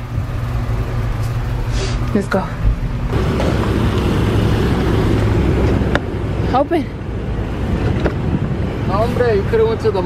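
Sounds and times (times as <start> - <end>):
low rumble: 0.0 - 9.8.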